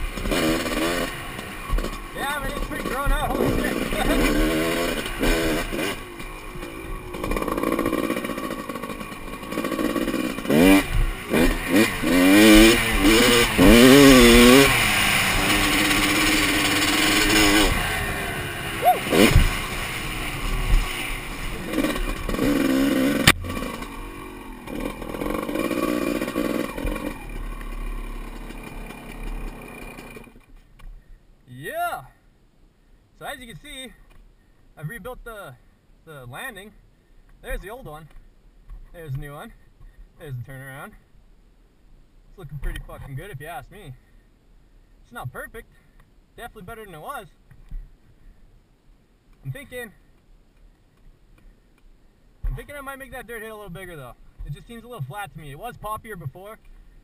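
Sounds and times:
dirt bike engine revving: 0.0 - 30.4.

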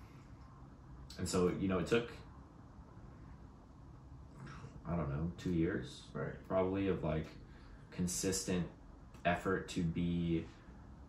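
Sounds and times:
faint low room hum: 0.0 - 11.0
man speaking: 1.1 - 2.3, 4.4 - 10.6
breath: 7.4 - 7.9.

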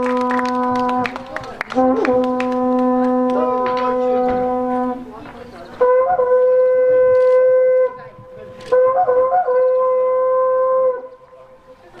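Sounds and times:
wind instrument steady note: 0.0 - 5.2, 5.8 - 11.8.

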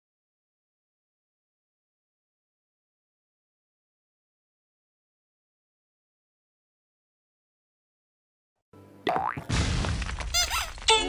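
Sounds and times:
rising boing sound effect: 9.1 - 9.5.

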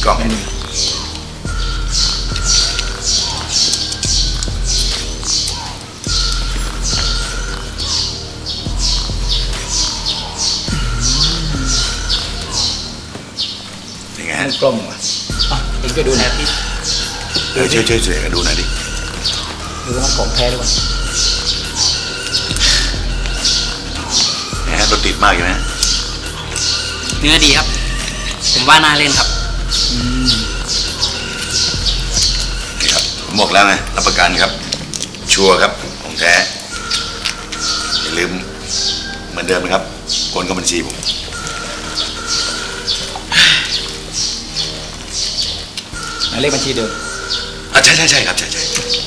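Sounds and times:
bird chirping: 0.0 - 49.0
steady low hum: 5.9 - 13.2.

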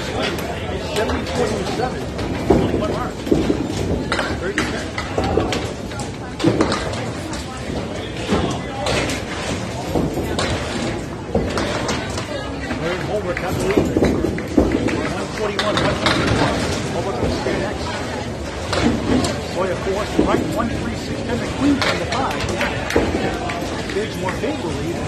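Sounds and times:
bowling balls and pins clattering: 0.0 - 25.0
people talking: 0.0 - 25.0.

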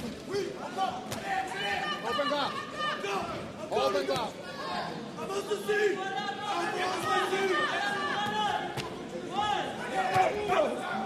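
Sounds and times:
crowd shouting in a hall: 0.0 - 11.0.

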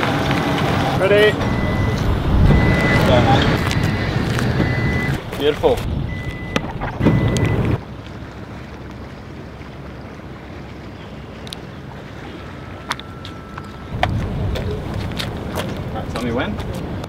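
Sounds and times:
steady outdoor hiss: 0.0 - 17.0
wind buffeting microphone: 0.4 - 7.8, 13.9 - 17.0.

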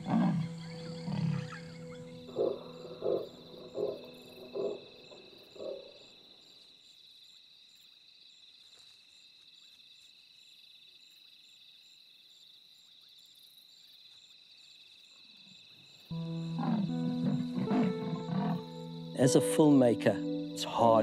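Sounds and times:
guitar music: 0.0 - 4.7, 16.1 - 21.0
leopard rasping calls: 0.0 - 6.0, 16.1 - 19.4
night insects chirring: 0.0 - 21.0.

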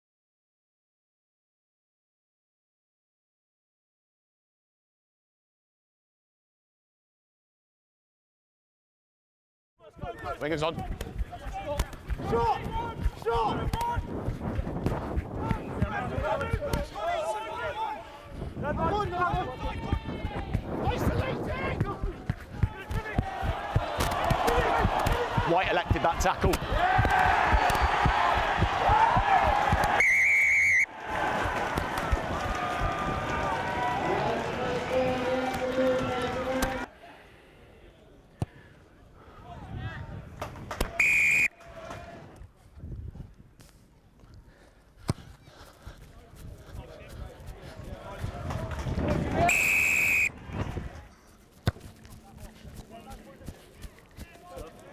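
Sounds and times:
players shouting calls: 15.4 - 18.2, 18.8 - 36.9, 40.8 - 42.1, 49.2 - 50.3
scattered thuds: 21.8 - 30.0
referee's whistle blast: 29.9 - 30.9, 40.8 - 41.6, 49.4 - 50.3.

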